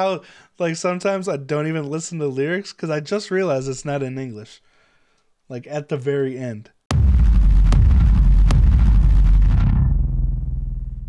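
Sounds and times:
deep bass rumble: 0:06.9 - 0:11.0
sharp hits: 0:06.9 - 0:11.0.

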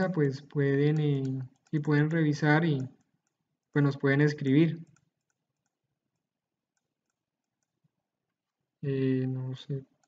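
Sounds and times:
computer mouse clicks: 0:00.0 - 0:08.0.

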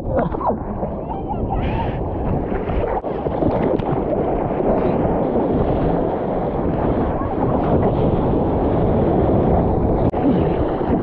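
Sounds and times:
seawater sloshing and gurgling: 0:00.0 - 0:11.0
steady low rumble: 0:00.0 - 0:11.0.

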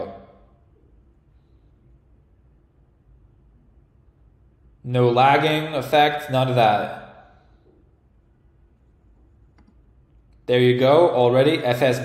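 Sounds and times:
man speaking: 0:00.0 - 0:00.4, 0:04.8 - 0:07.2, 0:10.4 - 0:12.0.

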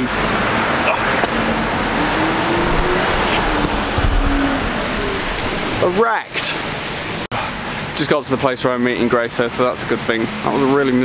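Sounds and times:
vehicle engine hum: 0:00.0 - 0:08.0.

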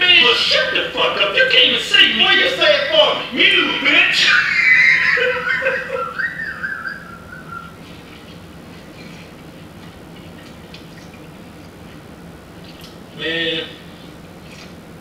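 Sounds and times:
high-pitched squealing laughter: 0:04.2 - 0:07.8.

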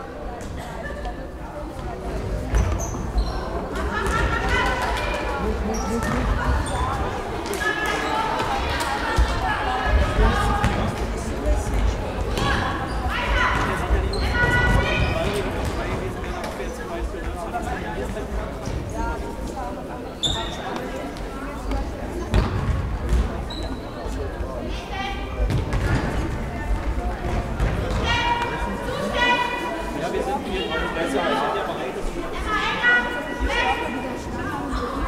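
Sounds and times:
shoes squeaking: 0:02.5 - 0:04.3, 0:20.1 - 0:21.8, 0:23.4 - 0:24.2
ball kicked and bouncing: 0:22.3 - 0:23.3, 0:25.5 - 0:26.1
football thuds on hall floor: 0:25.4 - 0:28.5.

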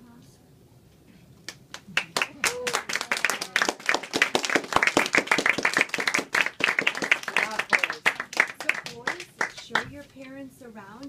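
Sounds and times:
audience applauding: 0:01.5 - 0:09.9.

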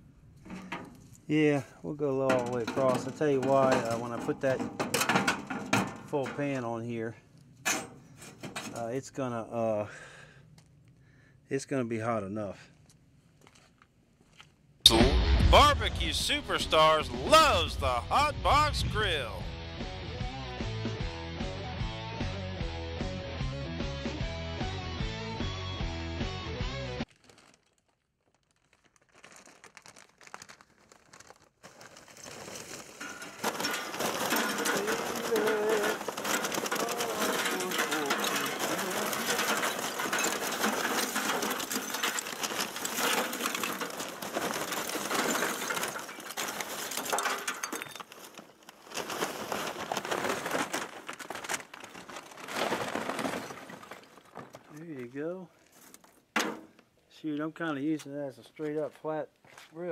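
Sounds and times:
charcoal clattering into metal grill: 0:00.4 - 0:01.2, 0:02.2 - 0:06.6, 0:07.6 - 0:08.8, 0:32.6 - 0:48.4, 0:56.4 - 0:56.8.

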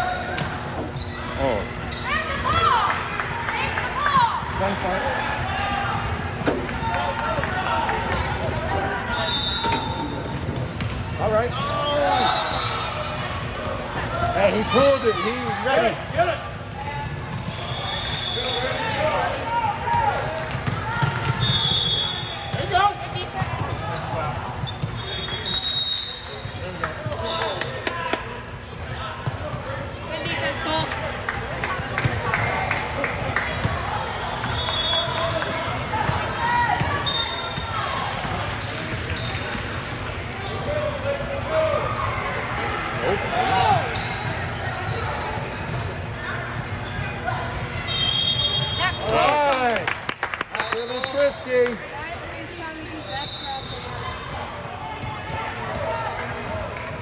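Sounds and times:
voices of players and spectators: 0:00.0 - 0:57.0
shoe squeaks: 0:00.4 - 0:02.8, 0:09.0 - 0:18.7, 0:21.4 - 0:26.6, 0:28.4 - 0:31.3, 0:43.8 - 0:49.0.

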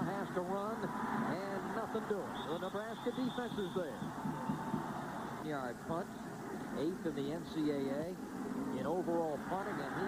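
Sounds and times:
football commentary: 0:00.0 - 0:10.0.

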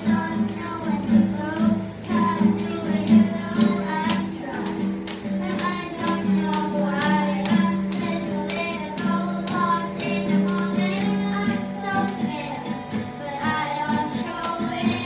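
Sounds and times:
acoustic guitar strumming: 0:00.0 - 0:15.0
girl singing: 0:00.0 - 0:15.0.

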